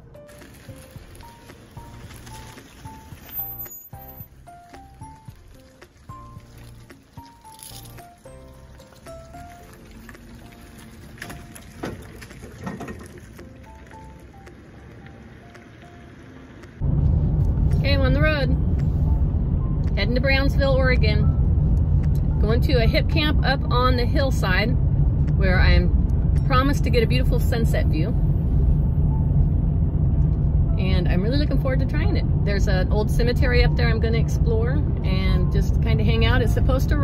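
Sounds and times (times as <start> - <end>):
road noise inside moving car: 0.0 - 37.0.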